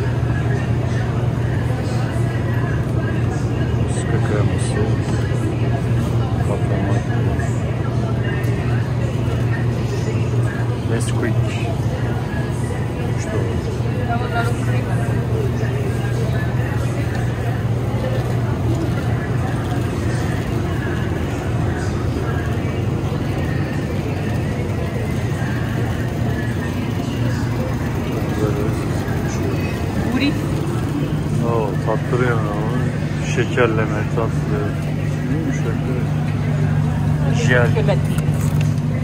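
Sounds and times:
indistinct background voices: 0:00.0 - 0:39.0
refrigerator low hum: 0:00.0 - 0:39.0.

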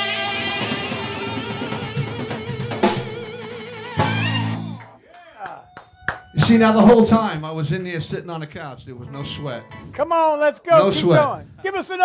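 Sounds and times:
live soul band playing: 0:00.0 - 0:05.0, 0:09.0 - 0:10.0.

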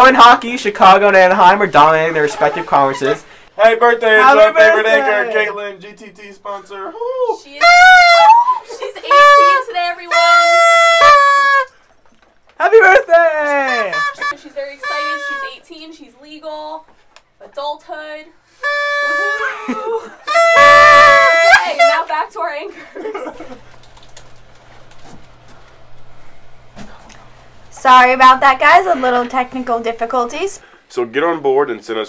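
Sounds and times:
low electrical hum: 0:00.0 - 0:32.0
party horns tooting: 0:07.6 - 0:12.0, 0:13.4 - 0:15.8, 0:18.5 - 0:22.2.

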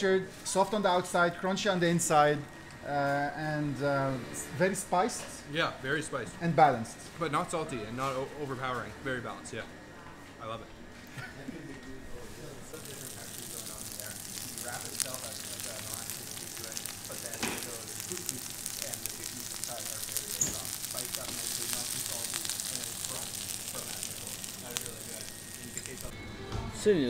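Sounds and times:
food sizzling on griddle: 0:12.3 - 0:26.2.

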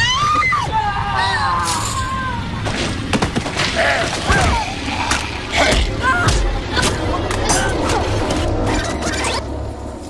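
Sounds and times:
low rumble: 0:04.7 - 0:10.0.

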